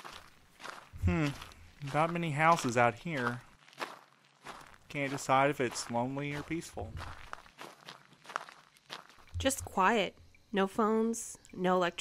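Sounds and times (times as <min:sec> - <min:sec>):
soft footsteps: 0:00.0 - 0:10.4.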